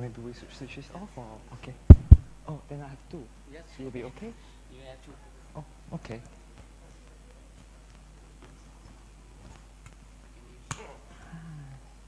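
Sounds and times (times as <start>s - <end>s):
microphone handling click: 1.9s - 2.3s.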